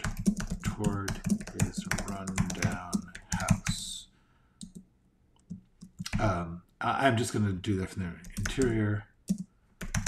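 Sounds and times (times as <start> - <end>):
computer keyboard key clicks: 0.0 - 3.8.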